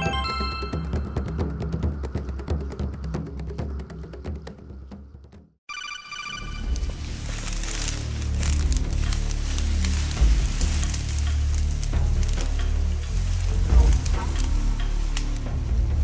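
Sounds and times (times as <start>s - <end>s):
chiming jingle: 0.0s - 1.1s
dry grass crackling rustle: 6.4s - 16.0s
percussive background music: 6.6s - 16.0s.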